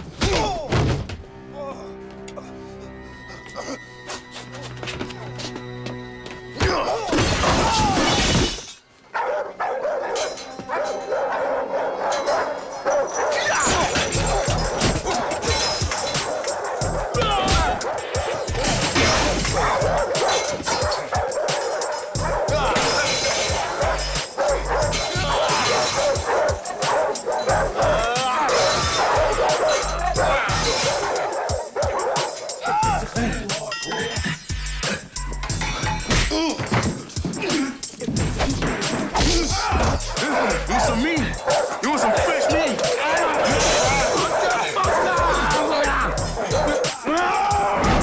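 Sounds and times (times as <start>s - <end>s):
dramatic music: 0.2s - 8.4s, 10.3s - 48.0s
glass breaking: 7.1s - 8.8s, 13.4s - 16.1s, 18.6s - 19.5s, 22.7s - 23.6s, 43.4s - 44.0s
dogs barking: 9.0s - 36.1s, 36.9s - 48.0s.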